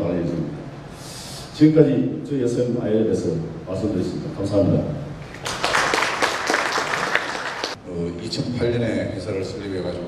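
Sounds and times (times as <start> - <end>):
audience applause: 5.3 - 7.8.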